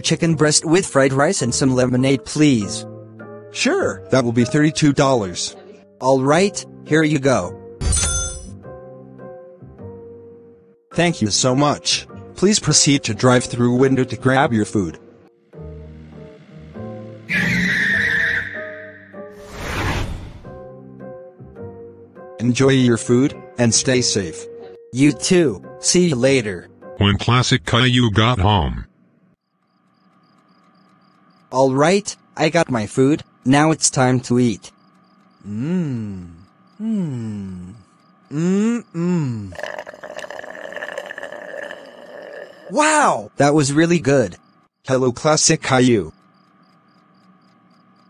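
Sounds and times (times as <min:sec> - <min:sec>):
background music: 0:00.0 - 0:28.4
car tyre squeal: 0:17.3 - 0:20.1
chewing food: 0:39.5 - 0:42.7.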